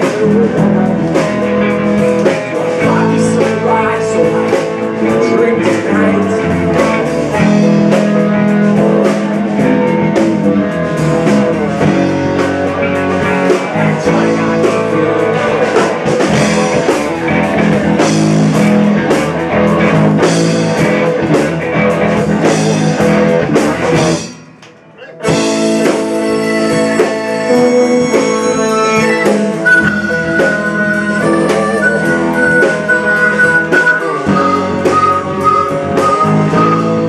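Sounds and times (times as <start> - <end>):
distorted electric guitars: 0.0 - 37.0
drum kit with cymbal hits: 0.0 - 37.0
electric bass: 0.0 - 37.0
harmonica long notes: 25.0 - 37.0.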